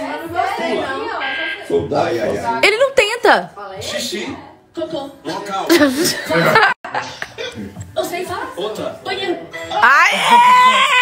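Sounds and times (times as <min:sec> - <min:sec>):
game show buzzer tone: 0:01.1 - 0:01.9.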